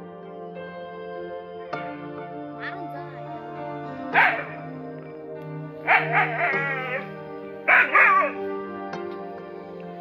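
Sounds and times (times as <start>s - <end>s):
music with held notes: 0.0s - 10.0s
dog barking sharply: 4.1s - 4.6s, 5.8s - 7.0s, 7.7s - 8.4s.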